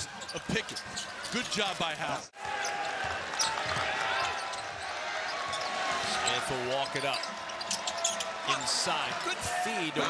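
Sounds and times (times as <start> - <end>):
sneakers squeaking: 0.0 - 1.5, 2.5 - 8.4
arena crowd noise: 0.0 - 10.0.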